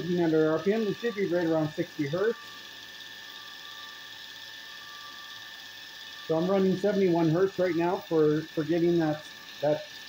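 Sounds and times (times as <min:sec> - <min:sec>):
faint high whine: 0:00.0 - 0:10.0
grinder motor whirring: 0:00.0 - 0:10.0.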